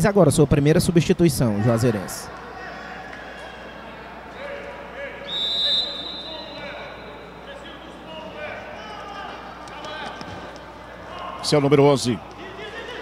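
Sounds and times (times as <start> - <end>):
referee's whistle blast: 5.2 - 7.2.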